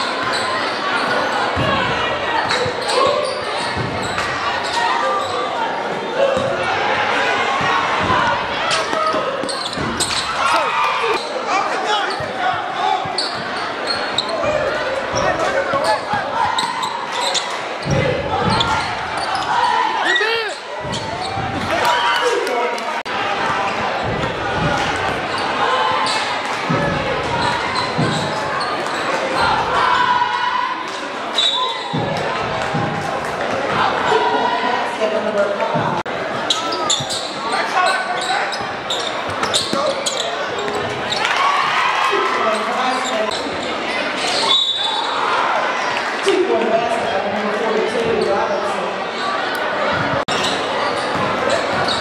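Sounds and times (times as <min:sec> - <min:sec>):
sneakers squeaking: 0:00.0 - 0:22.4, 0:23.2 - 0:34.3, 0:35.7 - 0:52.0
crowd shouting: 0:00.0 - 0:35.2
echoing voices: 0:00.0 - 0:52.0.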